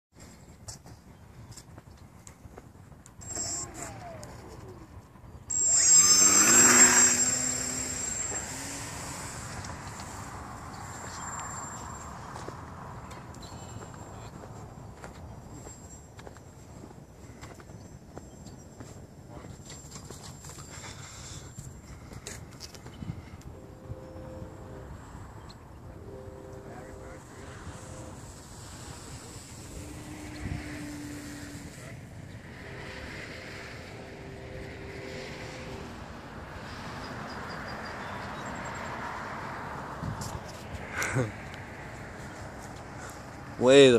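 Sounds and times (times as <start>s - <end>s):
model airplane motor whine: 3.2s - 12.0s, 25.9s - 38.3s.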